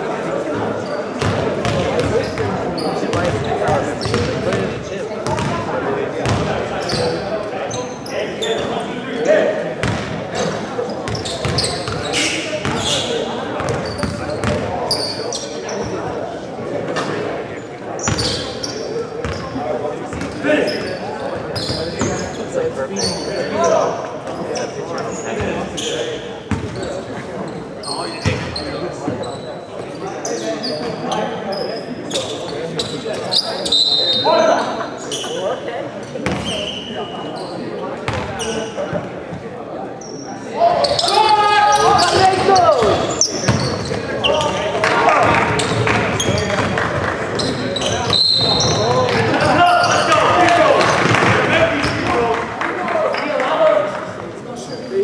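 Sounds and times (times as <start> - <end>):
voices of players and onlookers: 0.0 - 55.0
sneaker squeaks: 0.8 - 5.6, 6.2 - 16.2, 17.0 - 39.1, 40.0 - 51.1.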